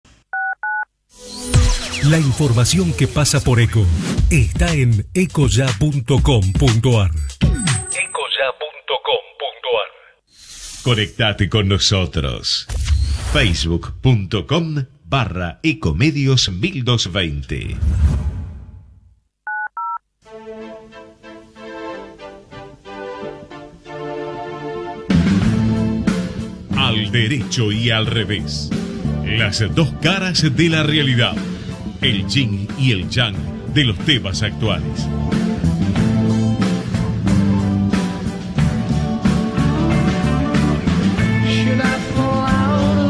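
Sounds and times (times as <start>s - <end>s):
telephone touch-tone beeps: 0.3s - 0.9s, 19.5s - 20.0s.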